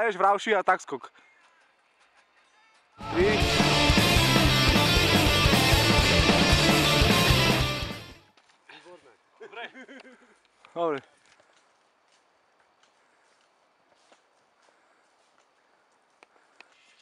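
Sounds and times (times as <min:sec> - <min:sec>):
rock song with drums and guitar: 0:03.0 - 0:08.2.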